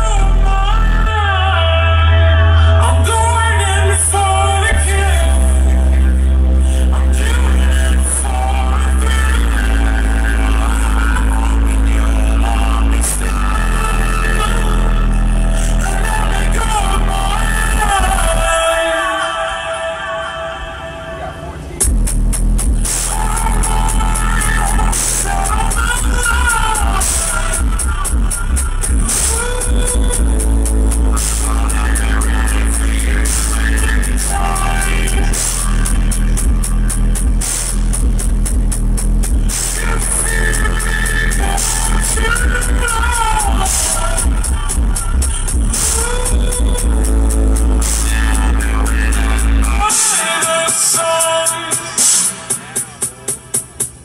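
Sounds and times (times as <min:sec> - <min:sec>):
song with vocals through subwoofers: 0:00.0 - 0:54.0.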